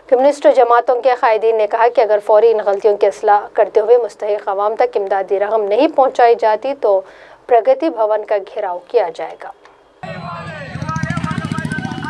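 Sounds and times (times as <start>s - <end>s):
people talking: 0.1s - 12.0s
vehicle engine throbbing: 10.0s - 12.0s.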